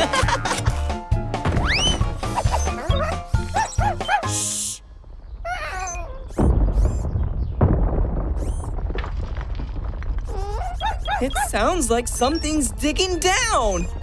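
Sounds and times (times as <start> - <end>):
bouncy cartoon music: 0.0 - 4.6
high wavering whimpers: 5.5 - 6.5, 10.3 - 14.0
underground rumble with thuds: 6.1 - 13.4.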